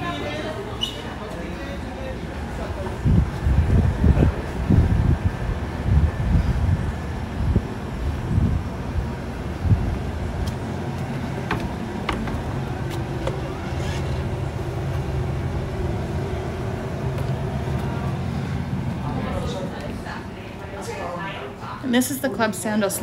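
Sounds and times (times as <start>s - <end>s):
low mechanical hum: 0.0s - 23.0s
wind rumbling on microphone: 2.6s - 20.1s.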